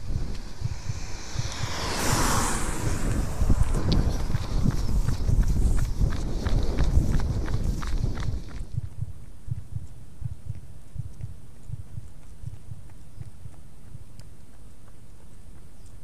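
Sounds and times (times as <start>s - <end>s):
wind on microphone: 0.0s - 14.2s
footfalls on asphalt: 0.2s - 15.9s.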